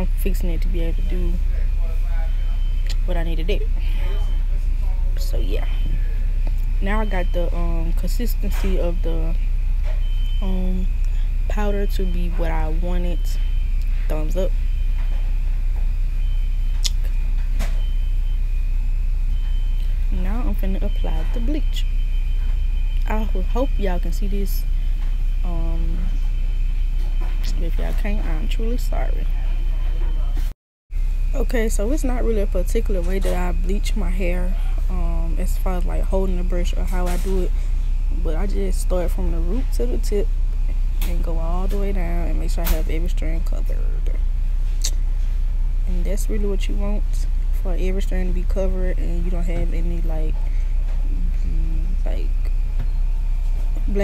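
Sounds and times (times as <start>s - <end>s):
faint high whine: 0.0s - 54.0s
low hum: 0.0s - 54.0s.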